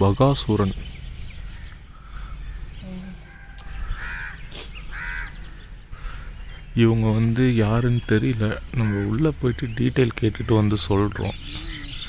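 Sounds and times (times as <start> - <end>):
bird calling: 0.0 - 12.0.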